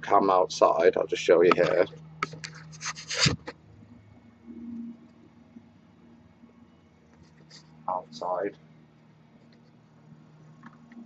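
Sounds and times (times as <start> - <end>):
laptop handling scratches and clicks: 1.5 - 3.6.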